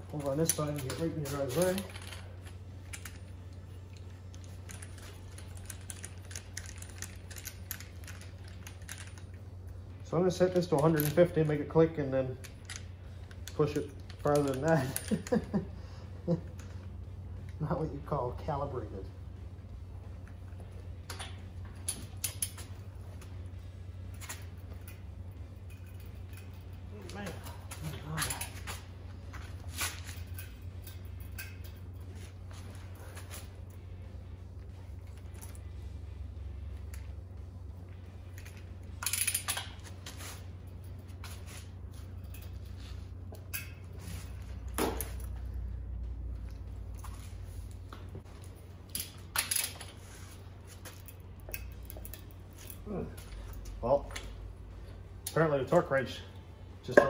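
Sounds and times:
steady low hum: 0:00.0 - 0:57.0
wrench metallic clinks: 0:24.2 - 0:28.5, 0:29.8 - 0:31.9.

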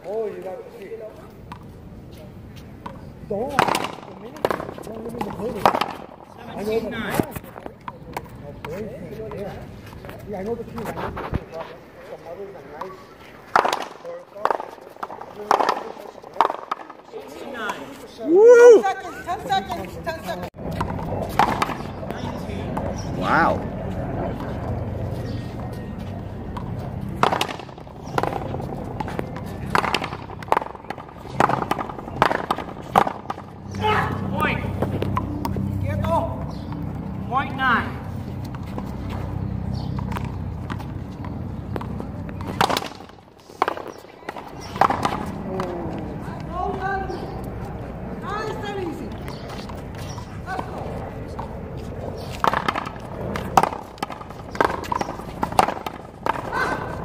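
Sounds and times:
people talking: 0:02.1 - 0:13.4, 0:14.0 - 0:27.5, 0:33.7 - 0:36.5, 0:44.0 - 0:47.4
ball cracking off paddles and wall: 0:02.8 - 0:09.5, 0:13.5 - 0:17.9, 0:20.7 - 0:23.0, 0:26.5 - 0:35.6, 0:39.8 - 0:46.8, 0:52.2 - 0:57.0.

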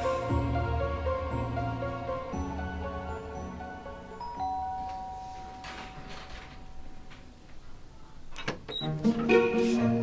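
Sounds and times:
soft background music: 0:00.0 - 0:07.2, 0:08.7 - 0:10.0
two-tone doorbell chime: 0:04.2 - 0:07.1.

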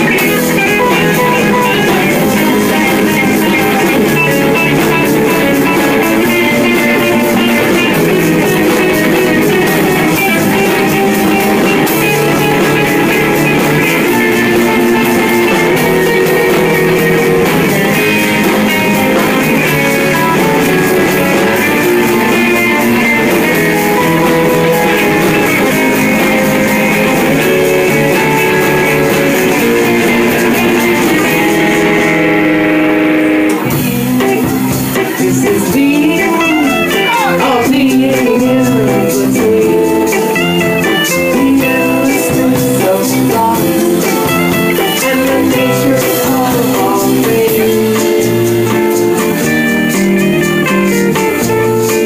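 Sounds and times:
electric guitar: 0:00.0 - 0:52.0
rock band playing live: 0:00.0 - 0:52.0.

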